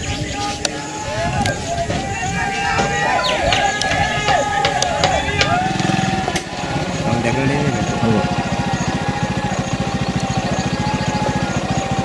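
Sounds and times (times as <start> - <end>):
voices: 0.0 - 12.0
engine running with fast pulse: 3.4 - 12.0.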